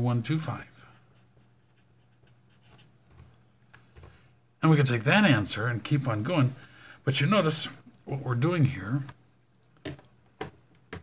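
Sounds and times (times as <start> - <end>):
pen scratching on paper: 1.2 - 2.9.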